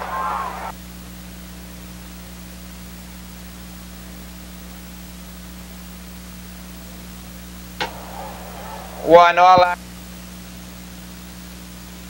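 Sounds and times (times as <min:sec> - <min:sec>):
race caller's voice or crowd: 0:00.0 - 0:00.7, 0:07.8 - 0:09.8
steady tape hiss: 0:07.8 - 0:09.8.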